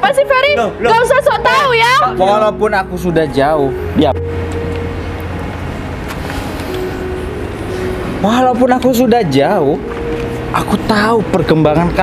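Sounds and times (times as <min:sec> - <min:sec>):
motor vehicle rumble: 0:00.0 - 0:12.0.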